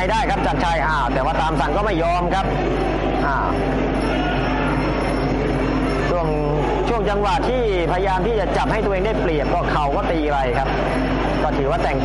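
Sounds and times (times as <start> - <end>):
man speaking: 0.0 - 2.5, 6.0 - 10.7, 11.4 - 12.0
stadium crowd hubbub: 0.0 - 12.0.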